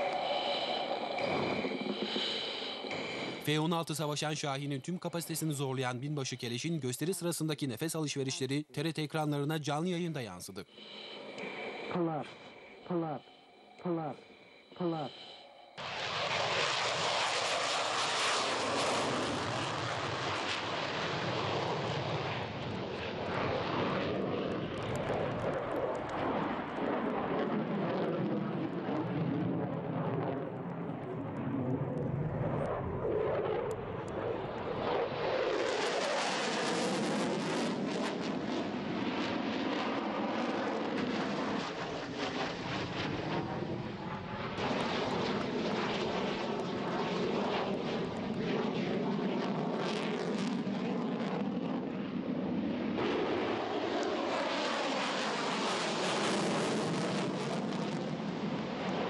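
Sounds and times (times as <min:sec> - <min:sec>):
airplanes flying past: 0:00.0 - 0:05.7, 0:10.2 - 0:59.0.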